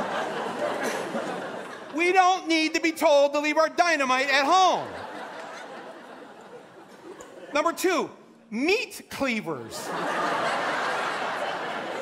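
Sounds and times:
theatre audience laughing: 0:00.0 - 0:02.2, 0:04.6 - 0:07.8, 0:09.6 - 0:12.0.

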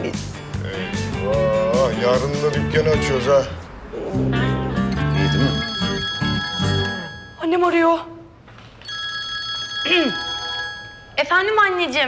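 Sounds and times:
phone ringtone chiming: 0:05.0 - 0:07.5, 0:08.9 - 0:11.3.

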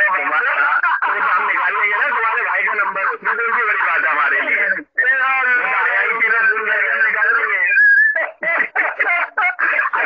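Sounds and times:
man talking over phone: 0:00.0 - 0:10.0.

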